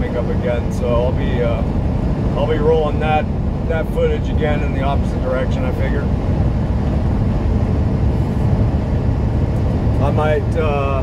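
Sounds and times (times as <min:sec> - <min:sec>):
road noise: 0:00.0 - 0:11.0
truck engine drone: 0:00.0 - 0:11.0.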